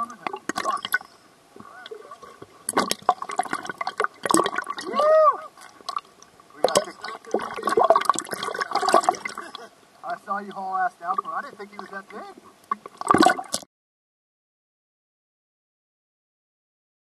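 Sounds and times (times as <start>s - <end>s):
seawater splashing and gurgling: 0.0s - 9.7s, 12.2s - 13.7s
person crying out: 4.8s - 5.6s.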